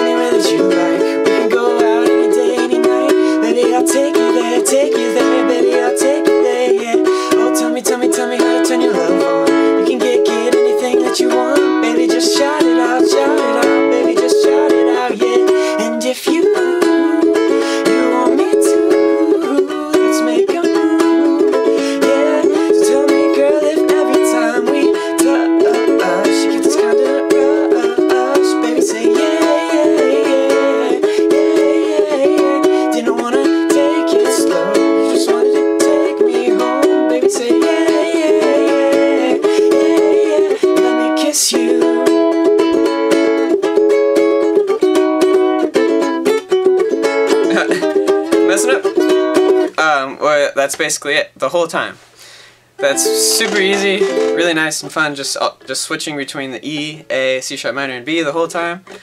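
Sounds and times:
man singing: 0.0 - 43.6, 47.3 - 49.1, 52.8 - 55.2, 56.0 - 59.0
ukulele strumming: 0.0 - 50.1, 52.8 - 57.5, 58.2 - 59.0.

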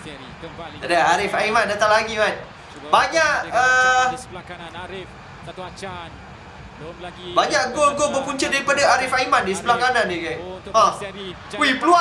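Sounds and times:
commentator speaking: 0.0 - 6.2, 6.8 - 12.0
stadium crowd noise: 0.0 - 12.0.

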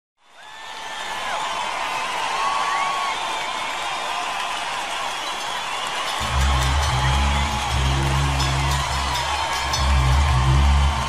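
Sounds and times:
audience cheering and whistling: 0.2 - 11.0
band playing low sustained notes: 6.2 - 11.0.

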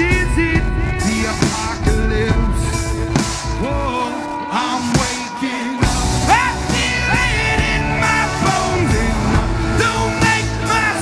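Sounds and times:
drums: 0.0 - 11.0
electric guitars: 0.0 - 11.0.

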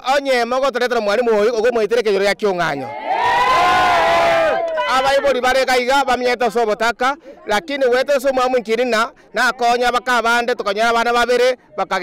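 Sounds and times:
crowd shouting together: 2.8 - 5.4.

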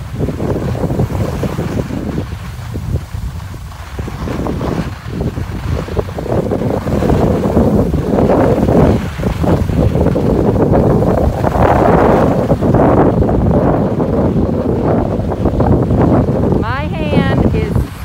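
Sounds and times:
skis scraping on packed snow: 0.0 - 18.0
wind buffeting microphone: 0.0 - 18.0.

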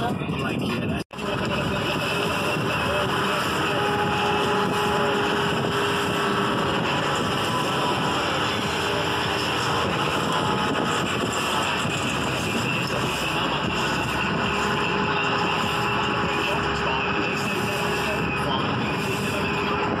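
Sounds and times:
motorboat engine running: 0.0 - 20.0
wind on microphone: 0.0 - 20.0.

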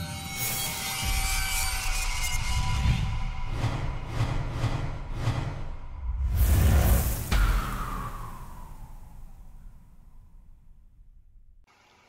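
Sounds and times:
low pulsing rumble: 2.4 - 11.6.

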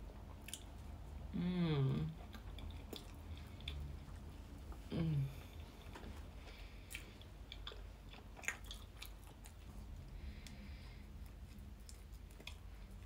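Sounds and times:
faint chewing: 0.0 - 1.3, 2.0 - 13.0.

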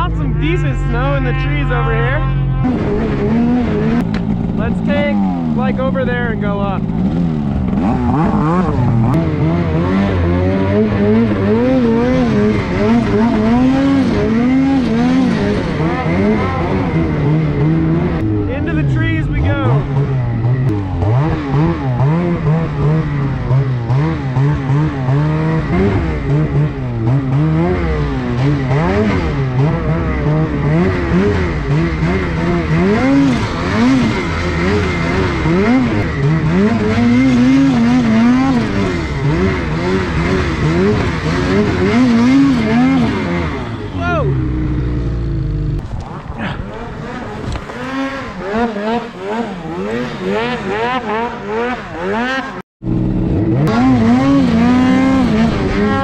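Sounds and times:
snowmobile engine revving: 0.0 - 56.0.

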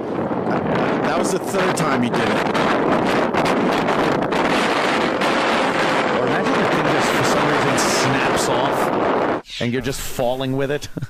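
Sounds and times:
strong wind on microphone: 0.0 - 9.8.

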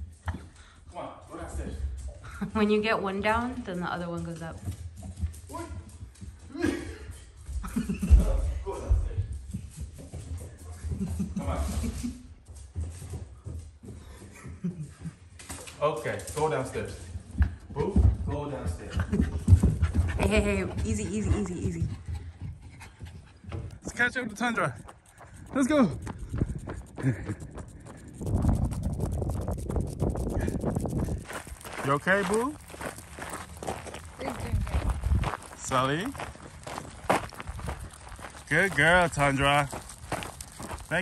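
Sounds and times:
footsteps on gravel: 24.7 - 41.0
low rumble on microphone: 25.3 - 31.8.

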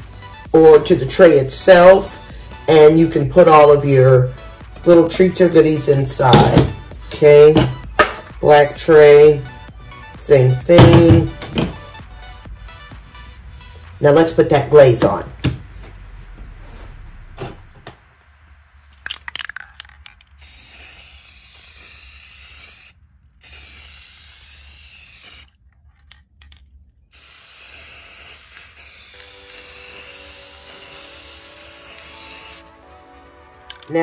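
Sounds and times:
aerosol can spraying: 19.0 - 25.5, 27.1 - 32.7.

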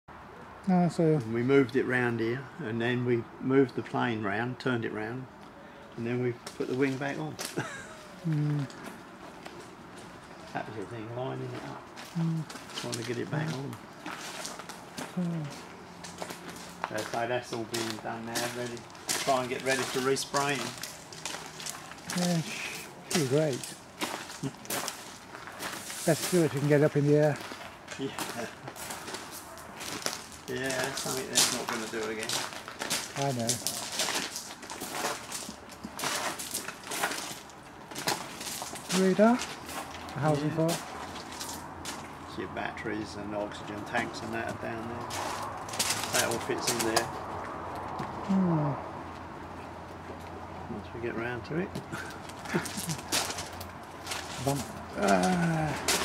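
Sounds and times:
person laughing: 7.4 - 8.8, 24.4 - 24.7, 51.9 - 53.2, 54.9 - 55.9
voice murmur: 7.9 - 8.9, 12.1 - 12.5, 15.1 - 15.6, 48.3 - 48.9, 54.4 - 56.0
footsteps on gravel: 11.4 - 42.2, 44.5 - 48.2, 51.8 - 56.0.

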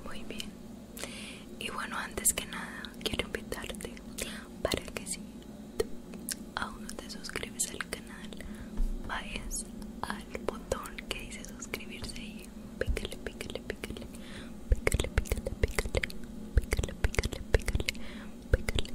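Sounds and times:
woman whispering: 0.0 - 0.6, 1.6 - 5.2, 6.6 - 18.9
small sharp mouth clicks: 12.4 - 18.9.

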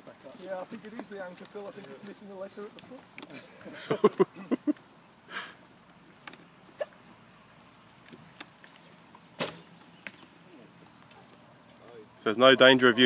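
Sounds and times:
arrow hitting target: 9.4 - 9.7.

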